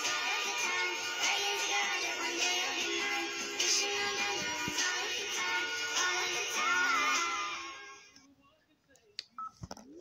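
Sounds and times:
music: 0.0 - 8.2.

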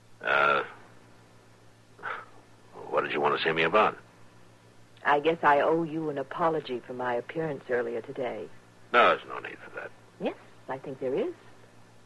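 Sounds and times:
low recording hum: 0.0 - 12.0.

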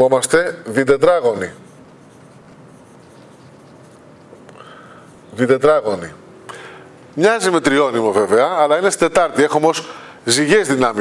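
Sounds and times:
marker writing on whiteboard: 1.3 - 4.5.

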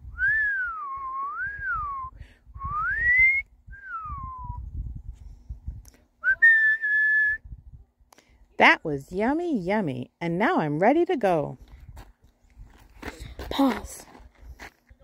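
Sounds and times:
person whistling a tune: 0.0 - 4.7, 6.2 - 7.5.

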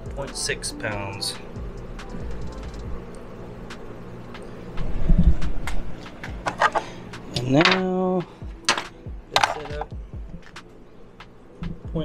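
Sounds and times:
handling clicks and rustles: 5.6 - 7.9, 8.6 - 10.6.

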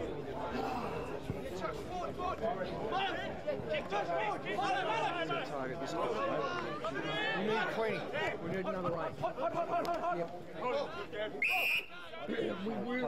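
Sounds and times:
spectators chatting: 0.0 - 13.0
shrill whistle blast: 11.4 - 12.0.

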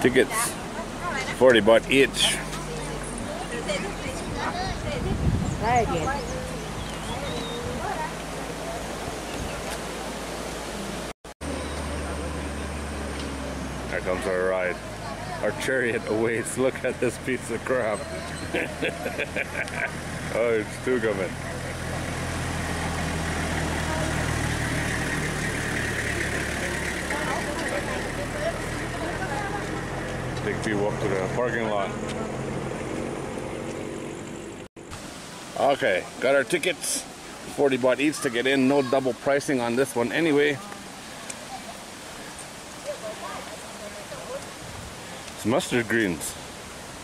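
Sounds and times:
truck engine humming: 0.0 - 34.7
steady outdoor hiss: 0.0 - 47.0.

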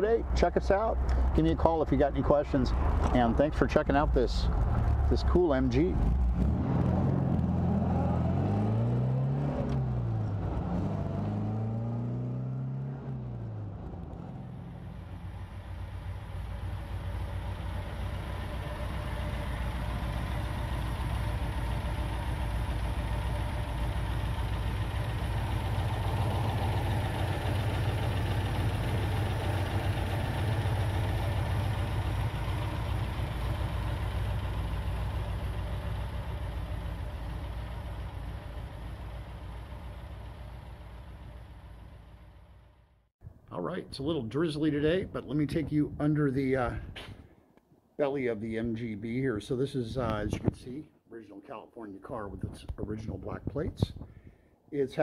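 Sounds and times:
car engine idling: 0.0 - 8.6, 13.1 - 43.0
car engine revving while driving: 6.0 - 15.1.

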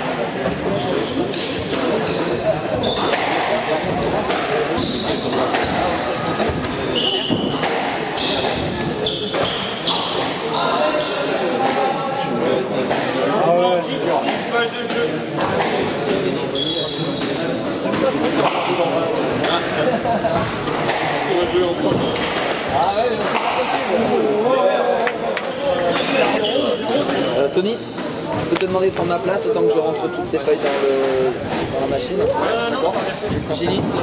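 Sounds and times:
murmur of voices: 0.0 - 34.0
squash racket striking ball: 3.0 - 10.4, 17.2 - 19.7, 20.6 - 23.9.

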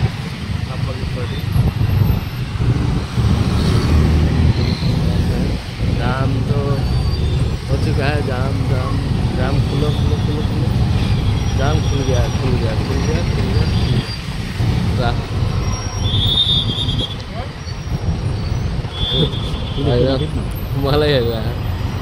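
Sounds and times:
city road traffic: 0.0 - 22.0
motorcycle engine and road rumble: 0.0 - 22.0
voices: 4.6 - 10.9, 11.5 - 17.8, 18.8 - 21.6.

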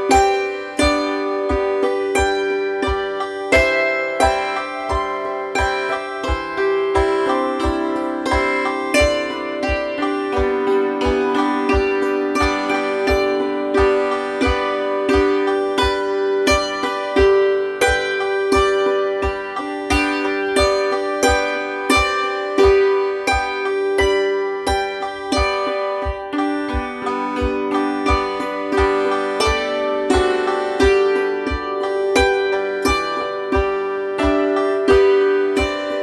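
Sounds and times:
hammered dulcimer playing: 0.0 - 36.0.

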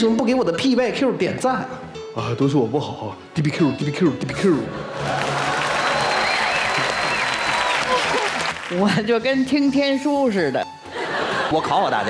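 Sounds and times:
audience applauding: 4.9 - 9.0.

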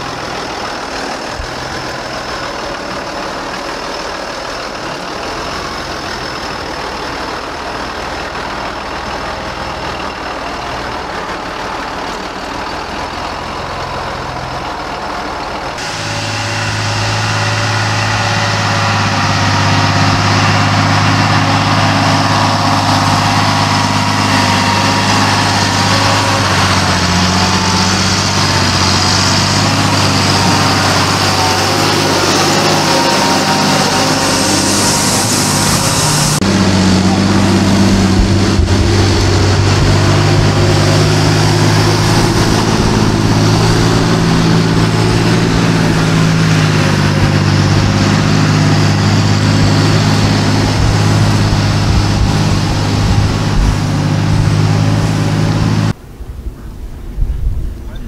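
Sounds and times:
tractor diesel engine running: 0.0 - 58.0.

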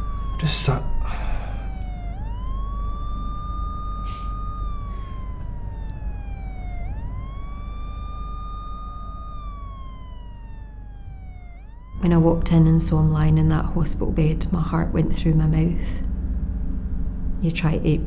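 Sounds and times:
ambulance siren wailing: 0.0 - 16.0
low rumble: 0.0 - 18.0.

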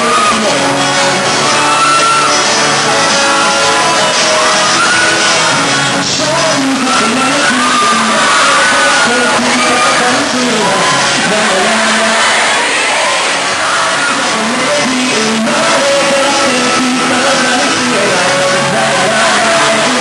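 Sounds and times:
man singing: 0.0 - 12.7, 13.9 - 20.0
acoustic guitar strumming: 0.0 - 20.0.

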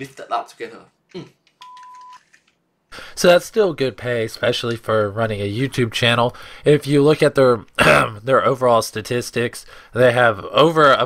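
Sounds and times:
man murmuring: 1.1 - 1.4
electronic censor beep: 1.6 - 2.2.

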